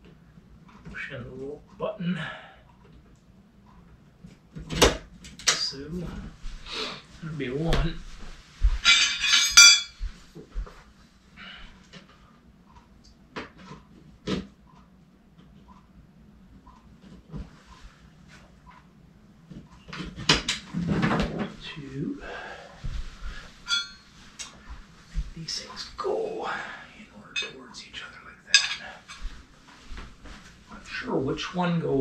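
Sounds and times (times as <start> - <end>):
metal spars clinking and ringing: 8.8 - 10.0, 23.7 - 24.2.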